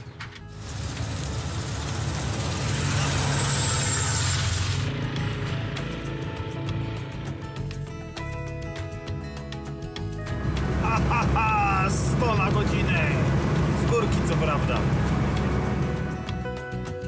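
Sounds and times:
background music: 0.0s - 17.0s
vehicle passing by: 0.6s - 7.6s.

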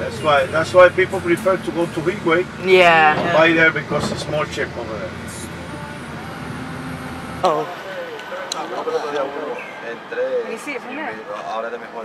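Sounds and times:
vehicle engine and tyre rumble: 0.0s - 12.0s.

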